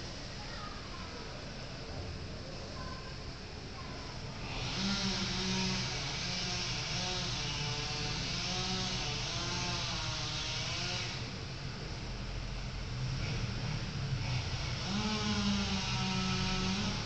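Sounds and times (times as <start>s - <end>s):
machine whirring with hiss: 0.0s - 17.0s.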